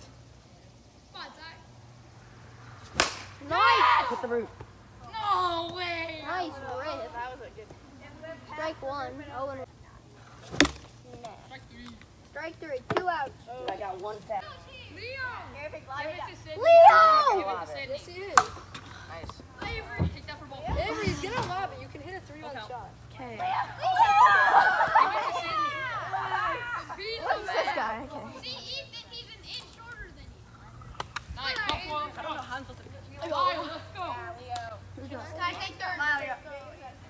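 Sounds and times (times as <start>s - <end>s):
voices: 0.0s - 37.0s
plastic bat hitting ball: 2.9s - 3.4s, 10.5s - 10.9s, 18.3s - 18.6s
excited shouting: 3.4s - 7.1s, 14.4s - 17.8s, 23.4s - 29.9s.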